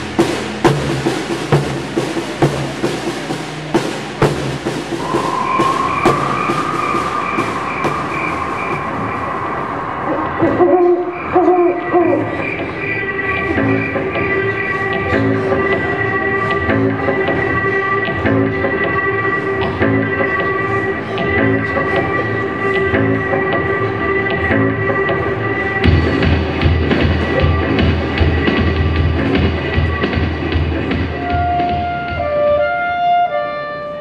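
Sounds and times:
snare and bass drum beat: 0:00.0 - 0:08.8
music with sustained notes: 0:00.0 - 0:34.0.

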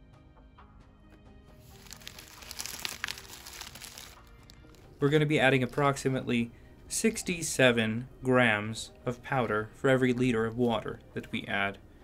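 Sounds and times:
faint background music: 0:00.0 - 0:12.0
plastic bag crinkling: 0:01.6 - 0:05.0.

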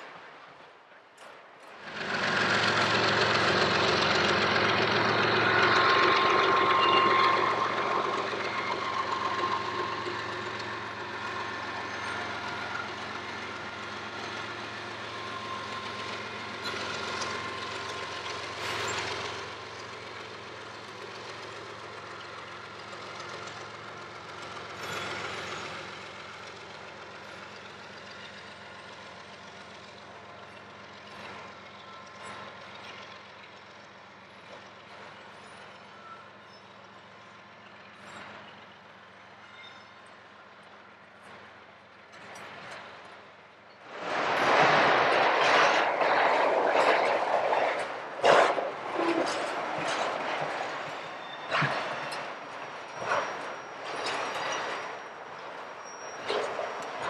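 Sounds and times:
train wheels clattering on rail: 0:01.1 - 0:57.0.

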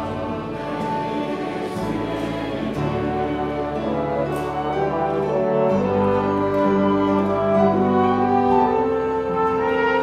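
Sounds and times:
voices singing: 0:00.0 - 0:05.0
piano: 0:00.0 - 0:10.0.

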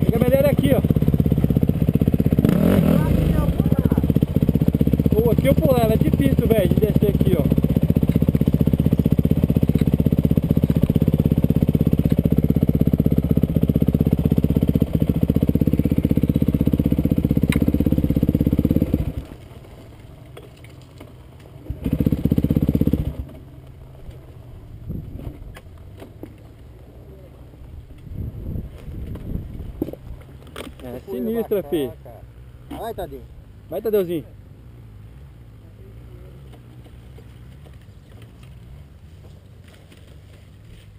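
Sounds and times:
dirt bike engine running: 0:00.0 - 0:34.2.

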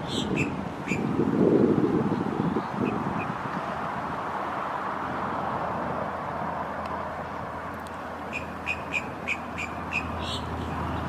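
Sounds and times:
bird chirping: 0:08.3 - 0:11.0.

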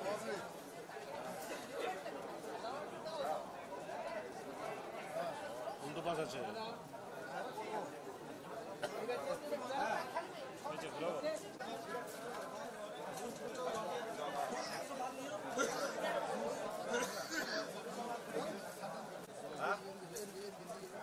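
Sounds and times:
babble of overlapping voices: 0:00.0 - 0:21.0.

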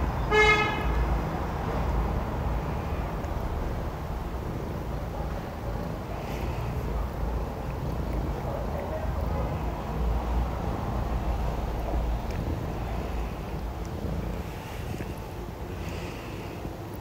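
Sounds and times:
steady low rumble: 0:01.0 - 0:17.0.

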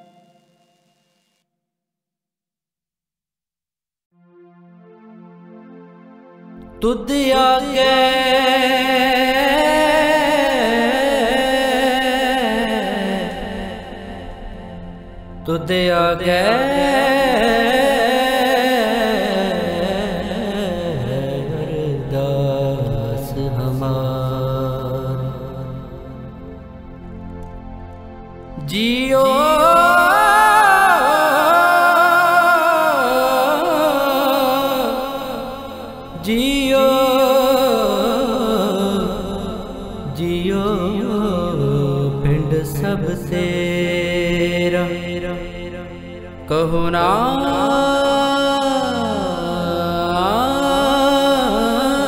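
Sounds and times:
devotional music held tones: 0:00.0 - 0:01.4, 0:04.2 - 0:52.0.

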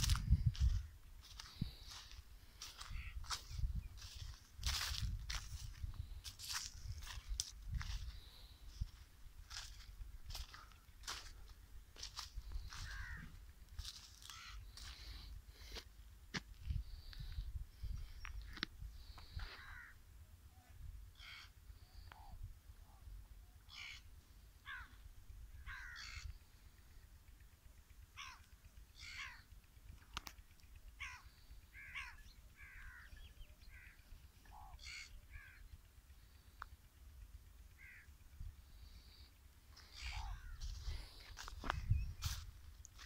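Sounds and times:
crows cawing: 0:00.0 - 0:16.4, 0:18.2 - 0:20.0, 0:21.1 - 0:27.0, 0:28.0 - 0:36.8, 0:37.6 - 0:43.0
steady low rumble: 0:00.0 - 0:43.0.

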